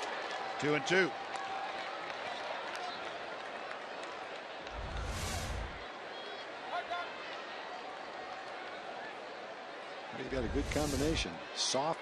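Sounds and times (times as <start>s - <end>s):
low rumble: 4.7s - 5.8s
brief hiss: 4.8s - 5.8s, 10.4s - 11.3s.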